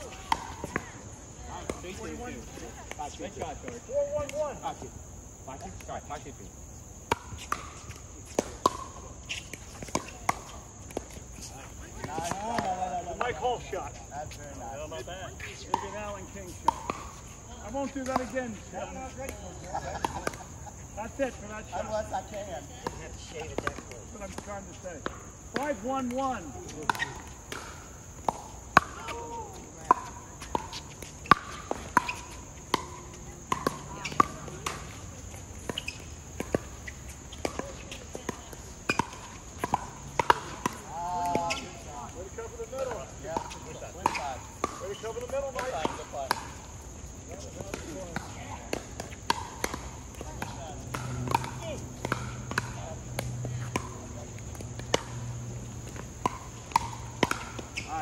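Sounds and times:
ball bouncing on court: 0.0s - 4.4s, 7.0s - 11.2s, 12.0s - 13.6s, 15.6s - 20.6s, 21.2s - 58.0s
paddles hitting plastic ball: 47.5s - 58.0s.

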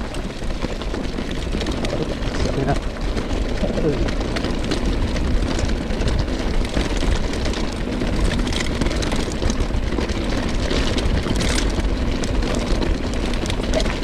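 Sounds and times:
bike clicks and rattles: 0.0s - 14.0s
bike tyres crunching on gravel: 0.0s - 14.0s
wind rumble on microphone: 0.0s - 14.0s.

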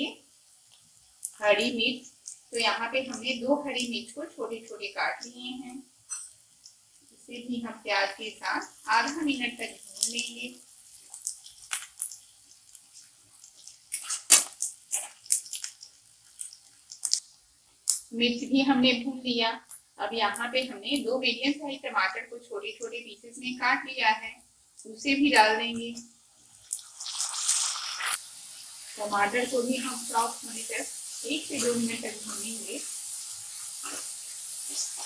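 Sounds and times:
tomatoes sizzling in hot oil: 0.0s - 35.0s
spatula scraping a pan: 31.2s - 35.0s.

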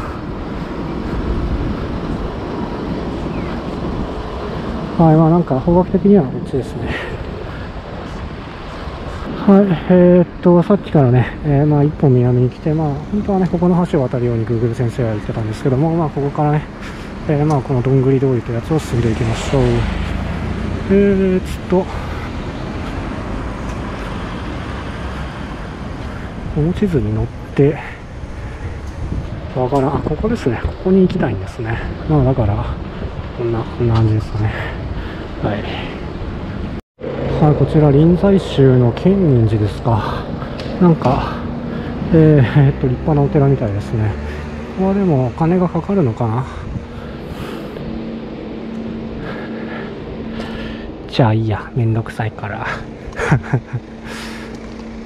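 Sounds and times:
city street traffic rumble: 0.0s - 55.0s
motor vehicle humming: 0.0s - 55.0s.

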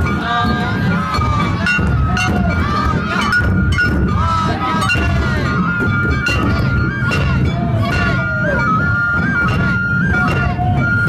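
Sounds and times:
clanging metal hand bell: 0.0s - 10.8s
high flute-like melody: 0.0s - 11.0s
taiko drums beating: 0.0s - 11.0s
people shouting: 0.1s - 11.0s.

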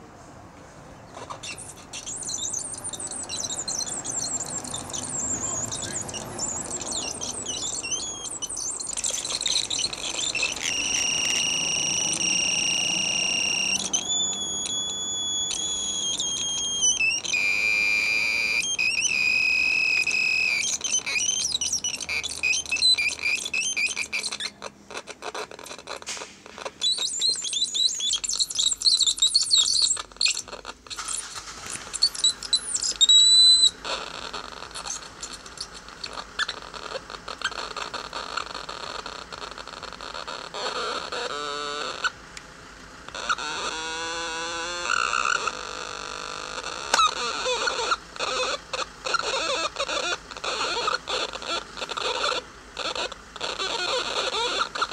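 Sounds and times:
electronic synthesizer chirps and tones: 1.4s - 24.5s.

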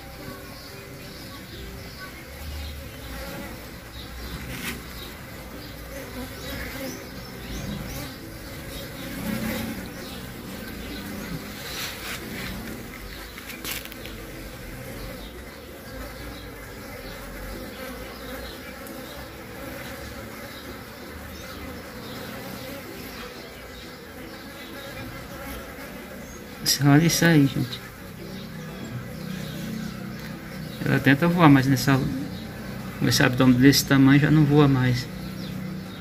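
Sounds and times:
bees buzzing: 0.0s - 36.0s.

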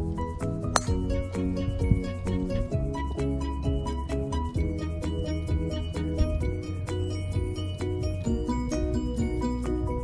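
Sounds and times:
background music: 0.0s - 10.0s
golf club striking ball: 0.6s - 1.2s.

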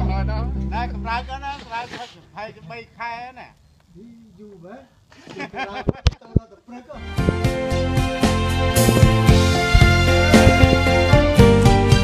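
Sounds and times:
man talking: 0.0s - 7.0s
sharp knock: 8.8s - 11.0s.

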